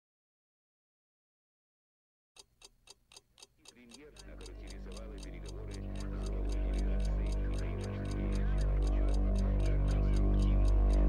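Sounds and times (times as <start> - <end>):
clock-like ticking: 2.4 - 11.0
low drone: 4.3 - 11.0.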